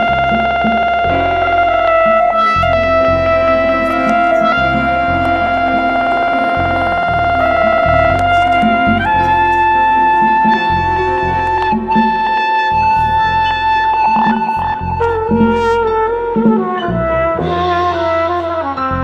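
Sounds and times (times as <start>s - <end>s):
drums: 0.0s - 19.0s
electric bass: 0.0s - 19.0s
piano: 0.0s - 19.0s
trumpet holding long notes: 0.0s - 19.0s.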